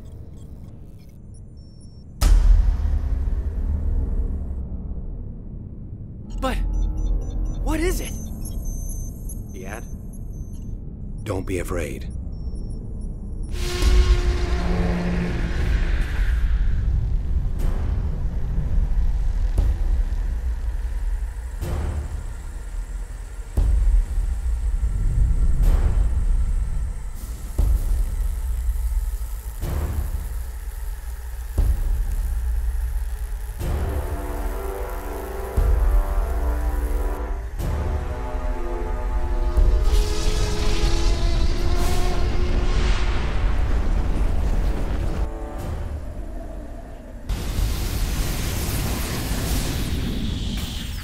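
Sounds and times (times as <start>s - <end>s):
dark tense film score: 0.0s - 51.0s.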